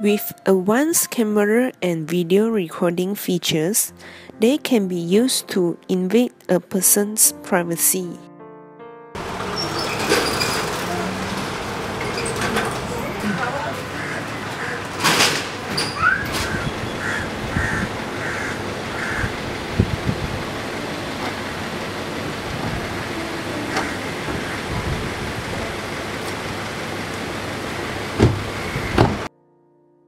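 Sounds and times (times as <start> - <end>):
street traffic: 9.2 - 29.3
knocks: 28.2 - 29.3.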